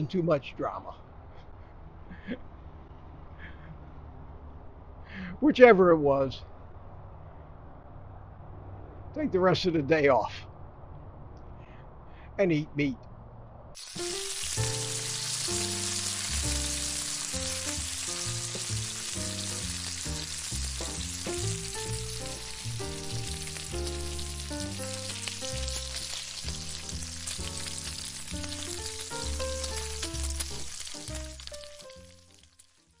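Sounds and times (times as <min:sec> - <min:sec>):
bacon sizzling in a frying pan: 0:13.8 - 0:33.0
background music with bass: 0:14.0 - 0:32.3.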